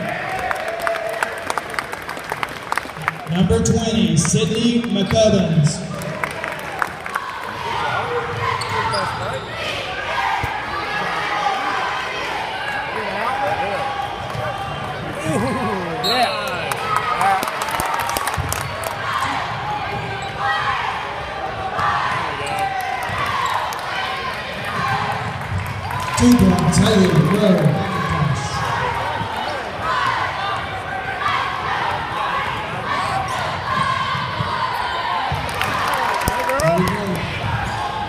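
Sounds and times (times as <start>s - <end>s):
crowd talking and calling out: 3.0s - 38.0s.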